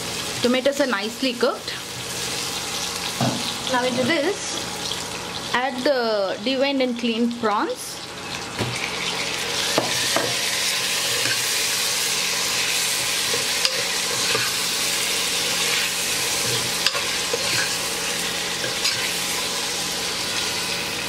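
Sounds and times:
prawns sizzling in hot oil: 0:00.0 - 0:21.0.

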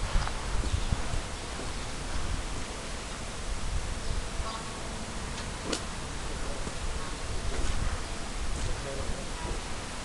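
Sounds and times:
outdoor hiss: 0:00.0 - 0:10.0
footsteps on paved path: 0:05.3 - 0:08.9.

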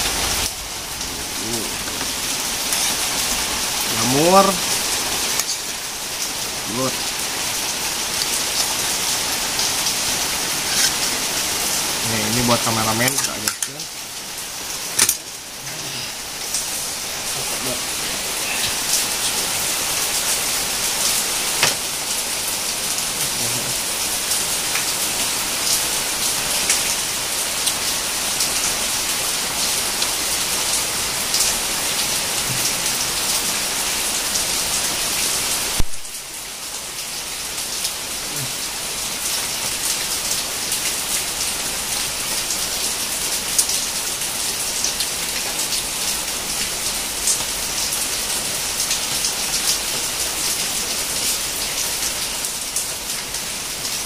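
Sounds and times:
steady rain falling: 0:00.0 - 0:54.0.

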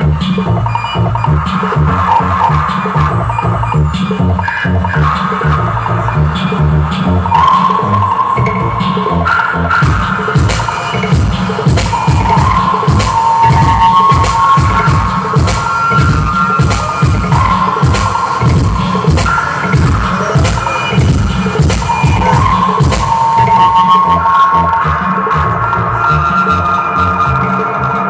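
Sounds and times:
electronic drum beat over bass: 0:00.0 - 0:26.4.

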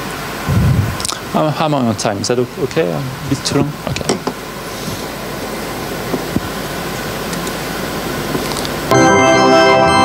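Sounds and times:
air handling hiss: 0:02.5 - 0:08.9.

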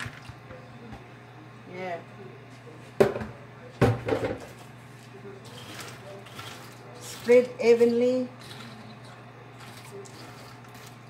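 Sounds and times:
kitchenware knocking on counter: 0:03.0 - 0:04.5.

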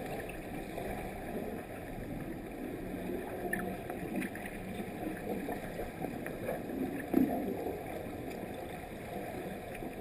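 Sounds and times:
muffled underwater pool noise: 0:00.0 - 0:10.0
water churned by fins: 0:00.0 - 0:10.0.

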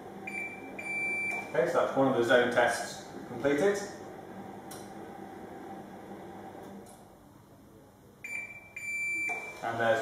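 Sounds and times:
small water pump humming: 0:00.0 - 0:07.0.

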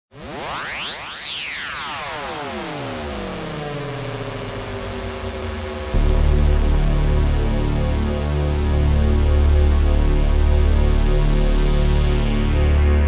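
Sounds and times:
synthesizer tones sweeping: 0:00.4 - 0:13.0
held synthesizer chord: 0:02.1 - 0:13.0.

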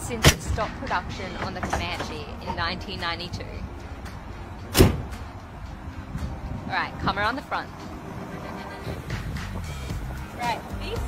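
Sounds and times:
tailgate slamming shut: 0:04.7 - 0:05.2.

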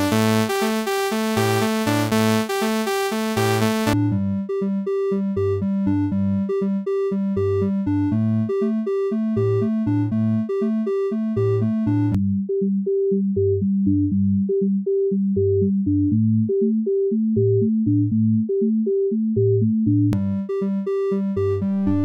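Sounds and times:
synthesizer riff over bass line: 0:00.0 - 0:04.4, 0:21.6 - 0:22.0.

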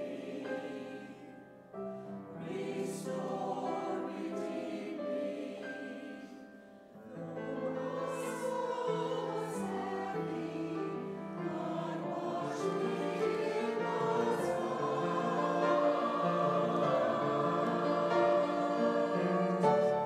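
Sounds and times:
mixed choir singing: 0:00.0 - 0:20.0
piano accompaniment: 0:00.0 - 0:20.0.

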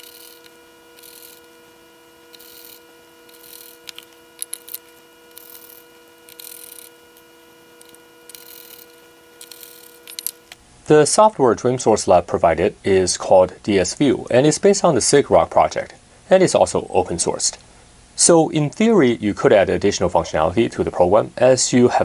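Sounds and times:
small clicks: 0:00.0 - 0:01.6, 0:02.3 - 0:10.6
screwdriver scraping screws: 0:00.0 - 0:10.6
steady multi-tone hum: 0:00.0 - 0:22.0.

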